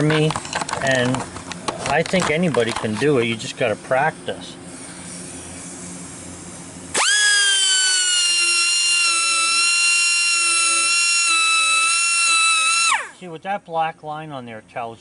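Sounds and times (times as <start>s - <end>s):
handheld grinder whining: 7.0s - 13.2s.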